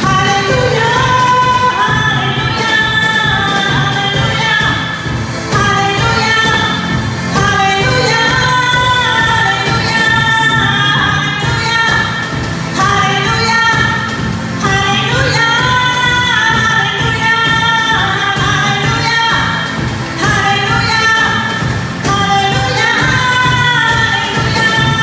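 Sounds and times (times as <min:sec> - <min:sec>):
drum kit steady beat: 0:00.0 - 0:25.0
woman singing: 0:00.0 - 0:25.0.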